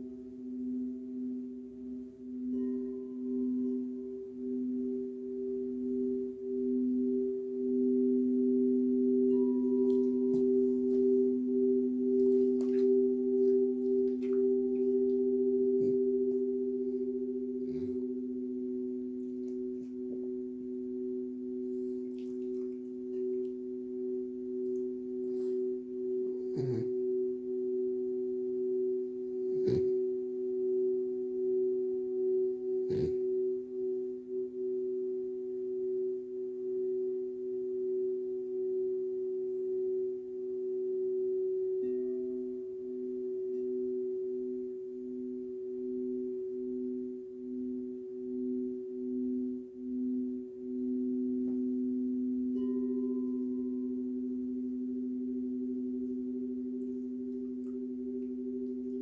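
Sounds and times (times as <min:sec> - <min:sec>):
crystal singing bowls ringing: 0:00.0 - 0:59.0.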